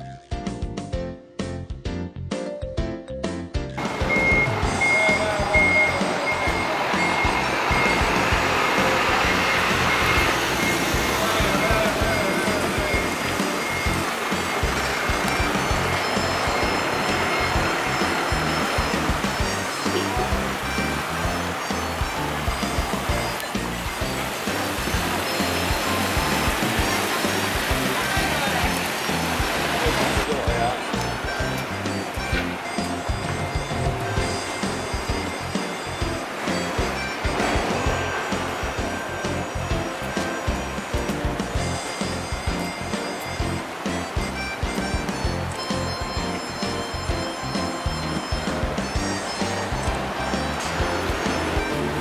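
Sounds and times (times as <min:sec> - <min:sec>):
music: 0:00.0 - 0:52.0
high beeping tone: 0:03.8 - 0:52.0
traffic noise: 0:03.8 - 0:52.0.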